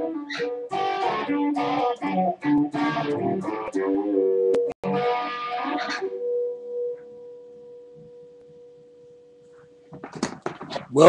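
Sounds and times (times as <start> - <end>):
electric guitar note ringing: 0.0 - 10.2.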